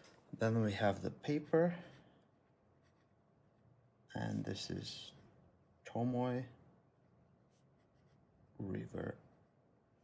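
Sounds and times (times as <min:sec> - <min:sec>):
pen scratching on paper: 0:02.8 - 0:03.2.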